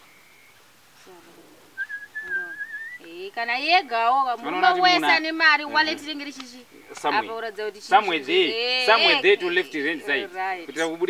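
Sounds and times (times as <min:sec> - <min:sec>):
person whistling high note: 0:01.8 - 0:03.0.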